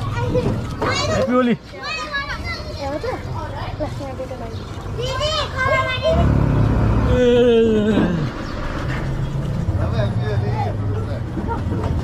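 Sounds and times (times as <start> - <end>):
vehicle engine hum: 3.3 - 12.0.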